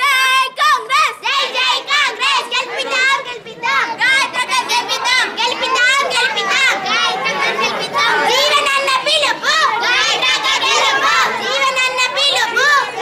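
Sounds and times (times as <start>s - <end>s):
children shouting slogans: 0.0s - 13.0s.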